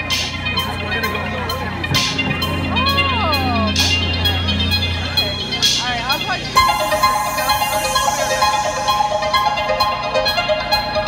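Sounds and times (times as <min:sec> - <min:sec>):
audience chatter: 0:00.0 - 0:11.0
live band playing: 0:00.0 - 0:11.0.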